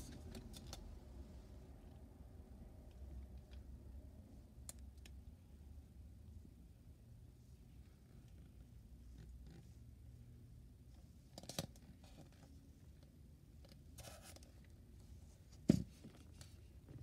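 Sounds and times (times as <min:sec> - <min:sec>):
low room hum: 0:00.0 - 0:17.0
plastic mask scraping and rustling: 0:13.7 - 0:17.0.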